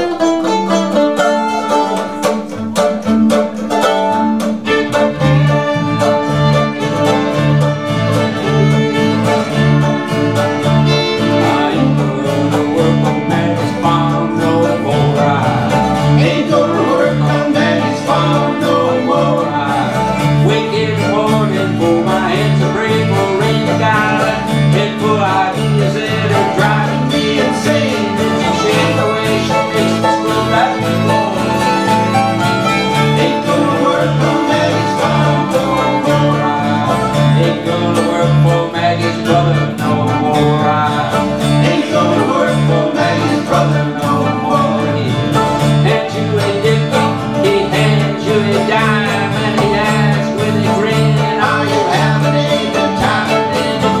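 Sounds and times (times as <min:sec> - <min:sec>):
acoustic guitars strummed and picked: 0:00.0 - 0:54.0
fiddle bowing: 0:00.0 - 0:54.0
upright bass: 0:00.0 - 0:54.0.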